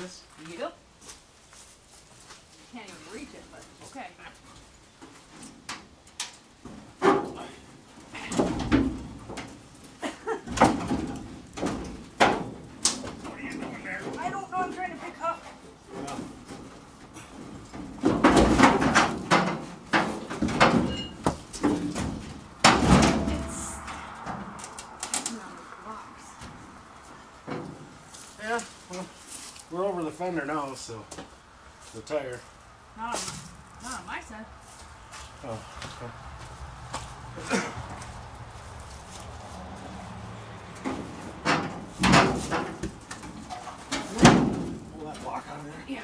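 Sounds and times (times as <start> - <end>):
metal bangs clanks and scrapes: 6.7 - 9.7, 15.5 - 25.2, 40.7 - 45.3.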